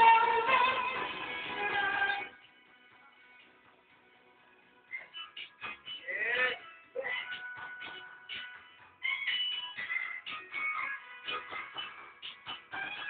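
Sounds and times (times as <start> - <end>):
woman singing into microphone: 0.0 - 2.3
karaoke backing music: 0.0 - 13.0.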